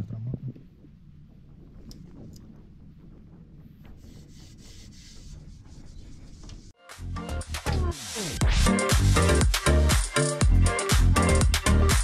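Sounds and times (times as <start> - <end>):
towel rubbing metal cover: 3.6 - 6.8.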